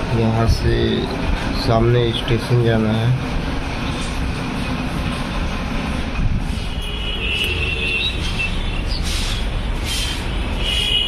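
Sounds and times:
busy road traffic rumble: 0:00.0 - 0:11.0.

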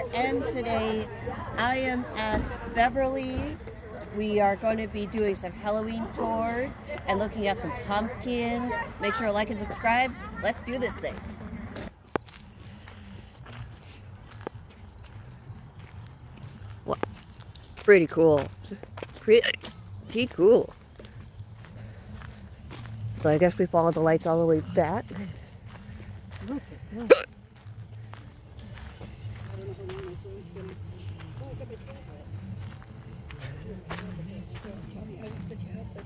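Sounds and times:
footsteps on outdoor path: 0:00.0 - 0:36.0.

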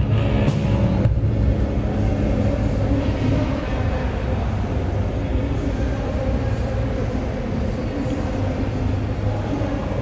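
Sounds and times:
low rumble in a large hall: 0:00.0 - 0:10.0.

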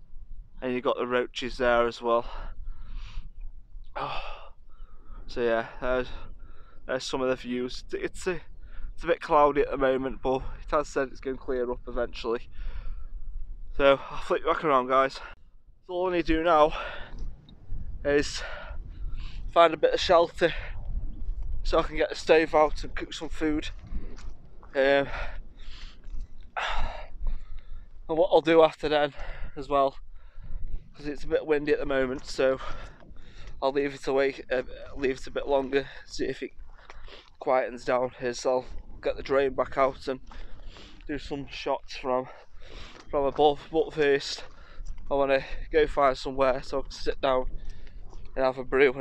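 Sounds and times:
wind rumble on microphone: 0:00.0 - 0:49.0
man speaking: 0:00.6 - 0:02.5, 0:04.0 - 0:04.4, 0:05.3 - 0:06.2, 0:06.9 - 0:08.4, 0:09.0 - 0:12.4, 0:13.8 - 0:17.1, 0:18.1 - 0:18.8, 0:19.4 - 0:20.8, 0:21.6 - 0:23.8, 0:24.7 - 0:25.4, 0:26.6 - 0:27.1, 0:28.1 - 0:30.0, 0:31.0 - 0:32.9, 0:33.6 - 0:36.5, 0:37.4 - 0:40.2, 0:41.1 - 0:42.4, 0:43.1 - 0:44.5, 0:45.1 - 0:47.5, 0:48.4 - 0:49.0
man breathing: 0:02.3 - 0:03.3, 0:04.0 - 0:05.3, 0:06.1 - 0:06.9, 0:12.5 - 0:13.2, 0:16.7 - 0:19.5, 0:25.0 - 0:28.0, 0:29.2 - 0:30.8, 0:32.6 - 0:33.6, 0:40.3 - 0:41.1, 0:42.3 - 0:43.1.

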